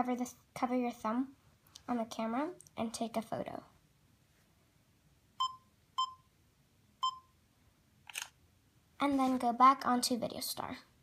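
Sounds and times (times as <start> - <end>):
short electronic beeps: 5.4 - 6.3, 7.0 - 7.3
camera shutter sound: 8.1 - 8.4.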